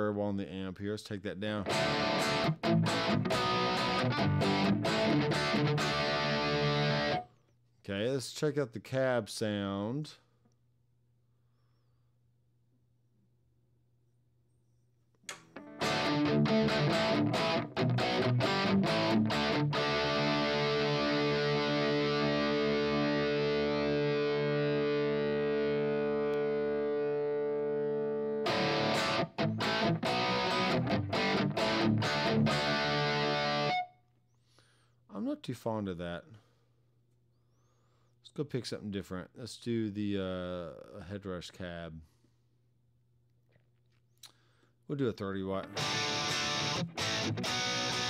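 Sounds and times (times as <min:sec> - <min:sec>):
distorted electric guitar chords: 0:01.7 - 0:07.2, 0:15.3 - 0:33.9, 0:45.6 - 0:48.0.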